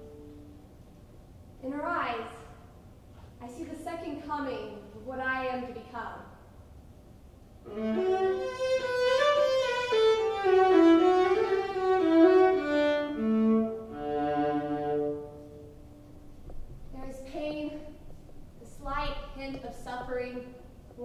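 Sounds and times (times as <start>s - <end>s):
solo violin playing: 7.6s - 16.1s.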